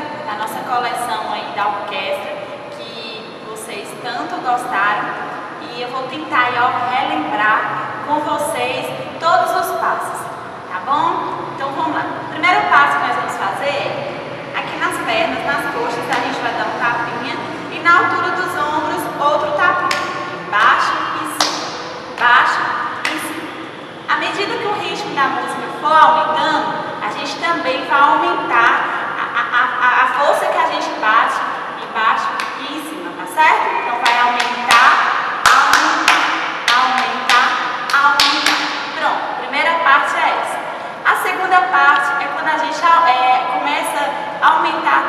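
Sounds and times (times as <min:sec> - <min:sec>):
woman speaking: 0:00.0 - 0:21.6, 0:22.2 - 0:45.0.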